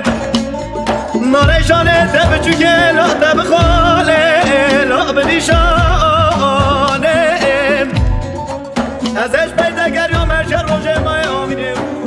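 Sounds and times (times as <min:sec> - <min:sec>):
folk dance band music: 0:00.0 - 0:12.0
deep drum hits: 0:01.4 - 0:04.2.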